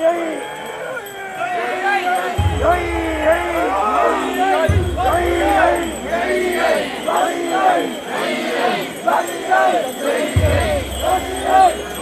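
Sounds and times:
crowd chanting rhythmic call: 0.0 - 12.0.

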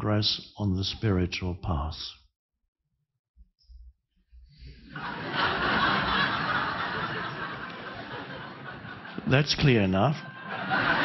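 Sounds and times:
room full of people laughing: 4.7 - 11.0.

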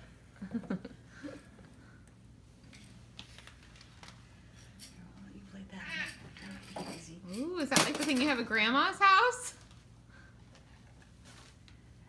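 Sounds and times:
low steady hum: 0.0 - 12.0
rustling and light clicks: 2.6 - 5.1.

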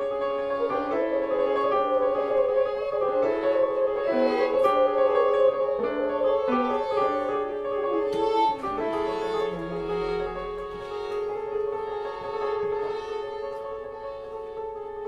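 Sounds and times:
piano: 0.0 - 15.0
violin: 0.0 - 15.0.

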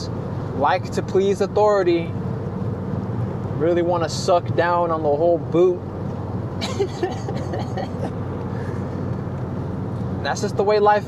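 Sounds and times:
car cabin road rumble: 0.0 - 11.0
person laughing: 6.6 - 8.1.

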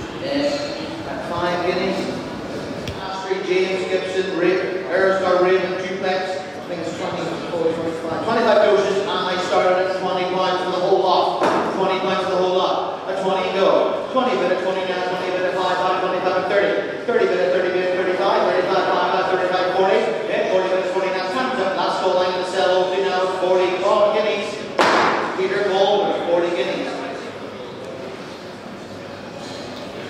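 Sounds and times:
man's voice echoing in hall: 0.0 - 28.3
sharp knock: 24.8 - 25.4.

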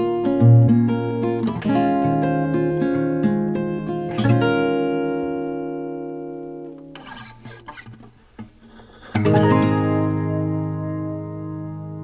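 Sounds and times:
acoustic guitar chord ringing: 0.0 - 7.7, 8.6 - 12.0.

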